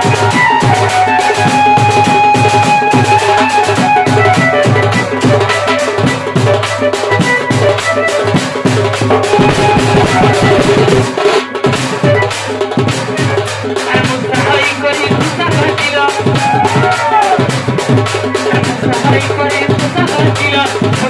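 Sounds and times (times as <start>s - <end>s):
bending melody line: 0.0s - 11.3s
dhol drum beaten with stick: 0.0s - 21.0s.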